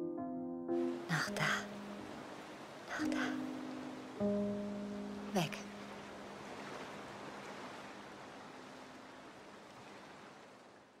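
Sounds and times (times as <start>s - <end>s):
sea surf rushing: 0.8s - 10.7s.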